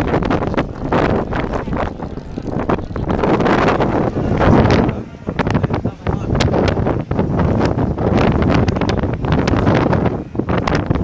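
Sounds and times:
ferry engines rumbling: 0.0s - 11.0s
wind buffeting microphone: 0.0s - 11.0s.

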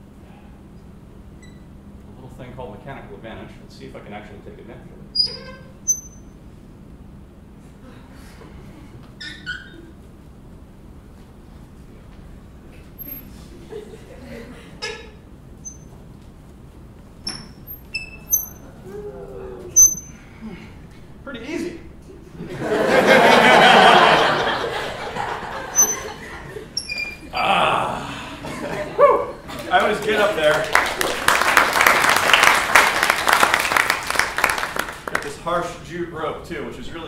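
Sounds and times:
room murmur: 0.0s - 37.0s
high squeaks: 5.2s - 6.4s, 9.2s - 10.0s, 13.0s - 13.3s, 14.8s - 16.0s, 17.2s - 18.8s, 19.7s - 20.3s, 25.6s - 27.3s.

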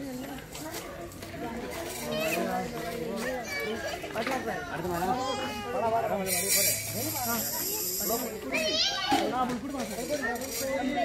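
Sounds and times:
group of people talking and calling out: 0.0s - 11.0s.

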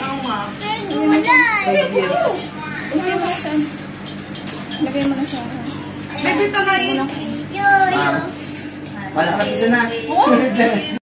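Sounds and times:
young child's high voice: 7.6s - 8.4s.

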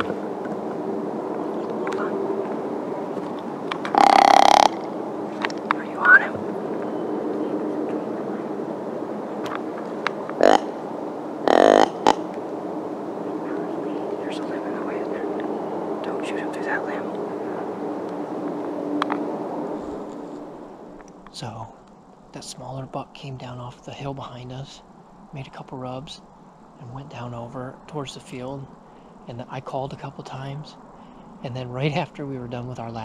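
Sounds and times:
low hum: 0.0s - 30.0s
deer grunt call: 3.9s - 5.0s, 10.3s - 10.8s, 11.4s - 12.3s.

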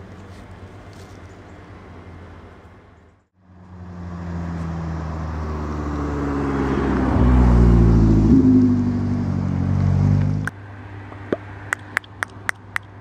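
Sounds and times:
vehicle engine running: 0.0s - 13.0s.

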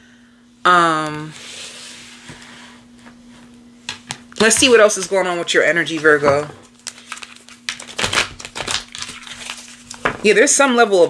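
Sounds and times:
faint steady hum: 0.0s - 11.0s
cards being shuffled: 5.9s - 10.2s.

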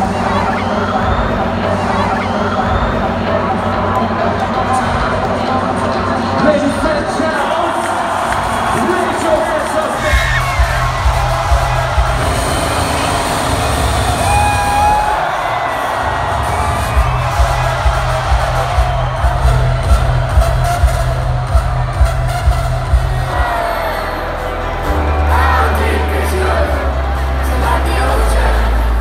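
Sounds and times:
crowd cheering: 0.0s - 29.0s
electronic dance music: 0.0s - 29.0s.

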